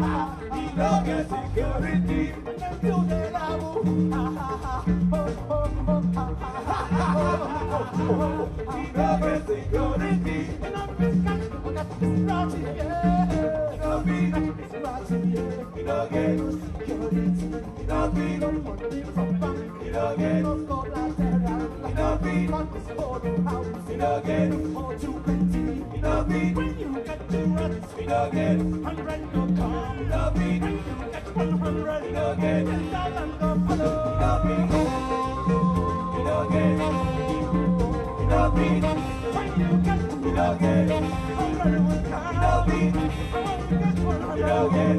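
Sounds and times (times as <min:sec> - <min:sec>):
afrobeat band playing: 0:00.0 - 0:44.9.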